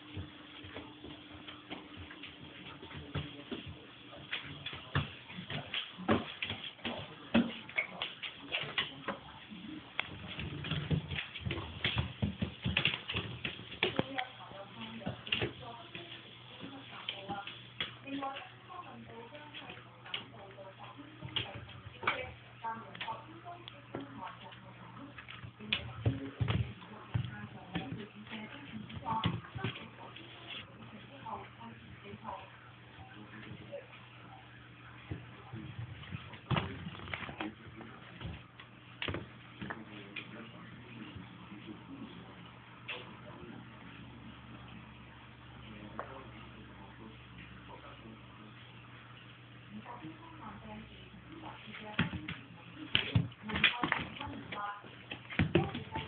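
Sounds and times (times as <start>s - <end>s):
dog claws clicking on wooden floor: 10.0s - 16.2s.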